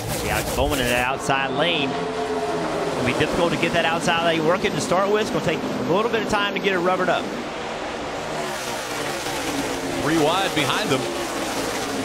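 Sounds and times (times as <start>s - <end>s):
race cars passing at speed: 0.0s - 12.0s.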